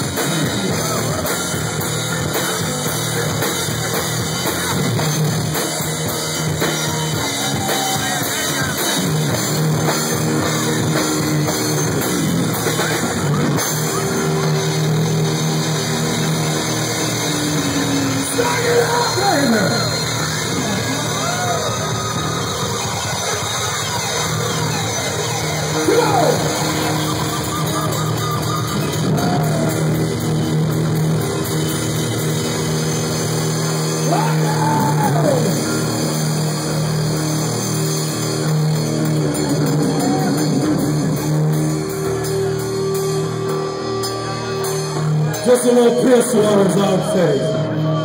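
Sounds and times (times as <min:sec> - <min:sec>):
drum kit playing: 0:00.0 - 0:47.1
electric bass guitar notes: 0:00.0 - 0:48.0
person yelling: 0:18.2 - 0:19.8, 0:25.8 - 0:27.0, 0:34.1 - 0:35.6.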